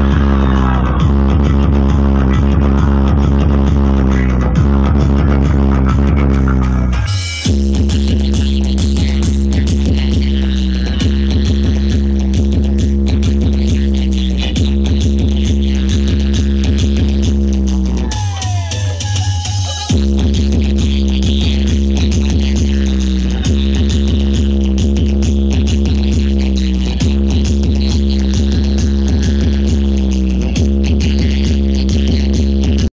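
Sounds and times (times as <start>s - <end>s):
electronic dance music: 0.0s - 32.9s.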